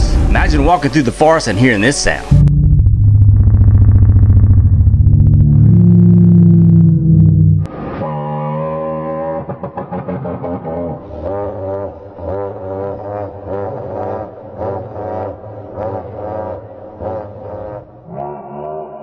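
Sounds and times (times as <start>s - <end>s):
deep pulsing dinosaur roar: 2.7s - 9.4s, 14.2s - 19.0s.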